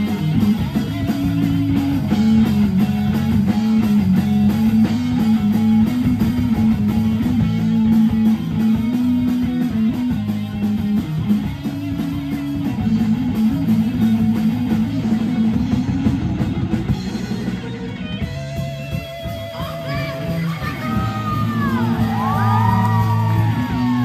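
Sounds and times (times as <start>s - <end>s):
rock band playing live: 0.0s - 24.0s.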